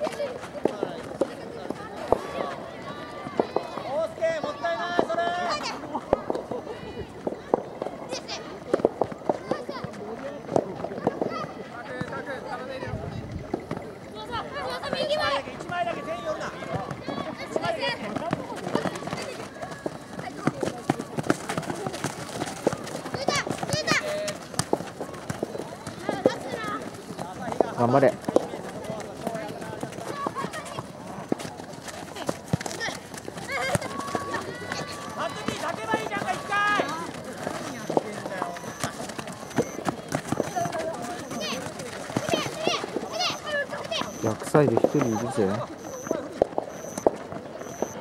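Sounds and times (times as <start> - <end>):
running footsteps on dirt: 0.0 - 48.0
people shouting and calling: 14.2 - 28.1, 32.1 - 47.0
people cheering: 32.2 - 47.0.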